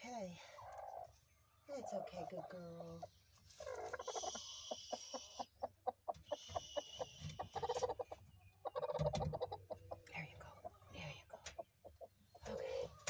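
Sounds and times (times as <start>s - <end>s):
hen clucking: 0.5s - 13.0s.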